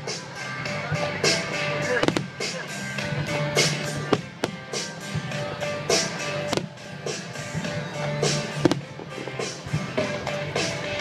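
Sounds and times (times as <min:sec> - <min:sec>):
music with held notes: 0:00.0 - 0:11.0
fireworks bursting: 0:01.4 - 0:02.6, 0:03.6 - 0:05.3, 0:05.9 - 0:07.6, 0:08.3 - 0:09.7.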